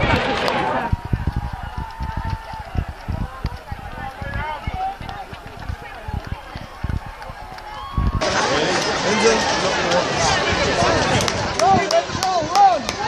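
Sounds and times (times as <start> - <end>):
runners' footsteps on road: 0.0 - 10.0
crowd voices and shouts: 0.0 - 13.0.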